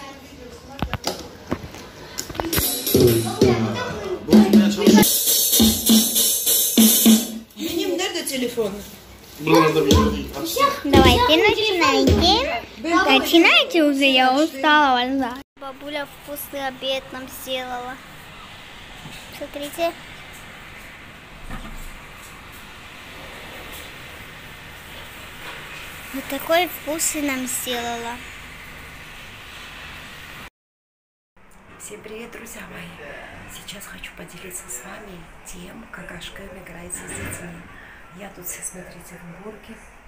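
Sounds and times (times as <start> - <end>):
electronic drum hits: 2.5 - 7.5, 9.9 - 12.6.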